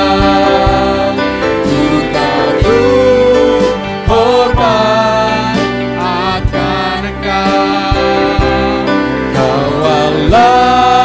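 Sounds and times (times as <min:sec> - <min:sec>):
singers holding long notes: 0:00.0 - 0:11.0
worship band playing: 0:00.0 - 0:11.0.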